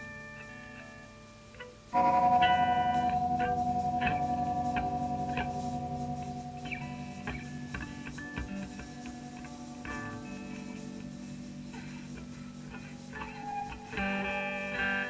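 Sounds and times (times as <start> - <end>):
electric guitars jamming: 2.0 - 15.0.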